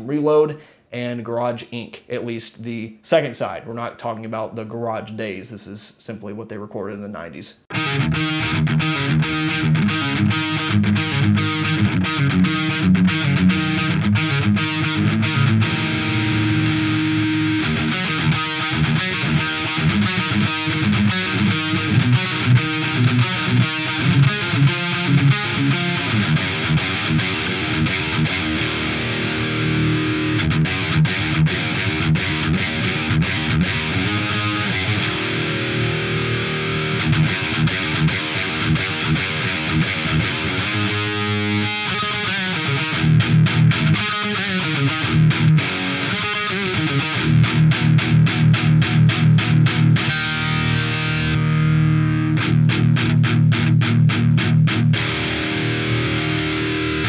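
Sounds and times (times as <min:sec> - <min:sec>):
distorted electric guitar riffs: 0:07.6 - 0:57.0.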